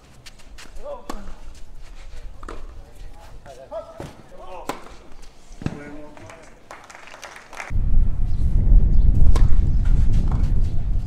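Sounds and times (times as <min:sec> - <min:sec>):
wind buffeting the microphone: 0:07.7 - 0:11.0.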